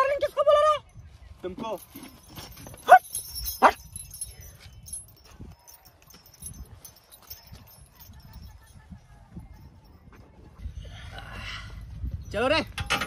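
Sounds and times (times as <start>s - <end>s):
metal chain jingling: 0.8s - 10.6s, 11.7s - 13.0s
dog yelps: 2.8s - 3.8s.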